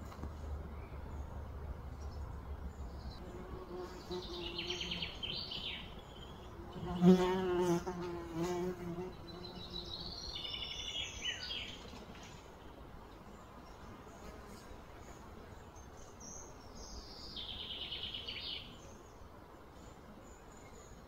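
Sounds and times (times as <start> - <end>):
bird chirps and trills: 2.0 - 7.7
insect buzzing: 3.2 - 10.6.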